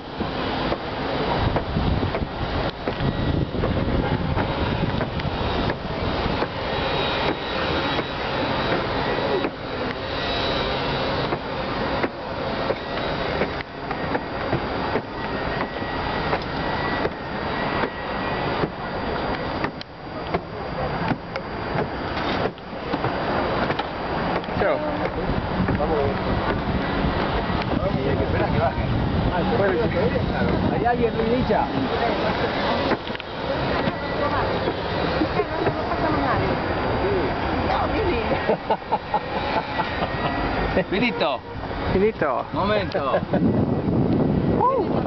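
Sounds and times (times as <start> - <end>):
faint voices: 0.0 - 45.0
wind buffeting microphone: 0.0 - 45.0.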